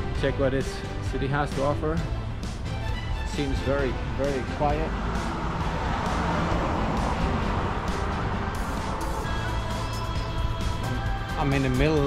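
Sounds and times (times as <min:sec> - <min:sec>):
background music: 0:00.0 - 0:12.0
car passing: 0:02.0 - 0:11.2.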